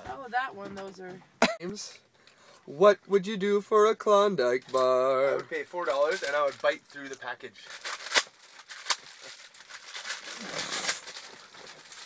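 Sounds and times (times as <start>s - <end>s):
wrapper crinkling and tearing: 5.8s - 12.0s.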